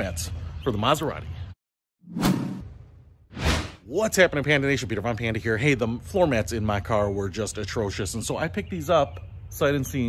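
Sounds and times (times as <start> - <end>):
whoosh sound effects: 2.1 - 3.8.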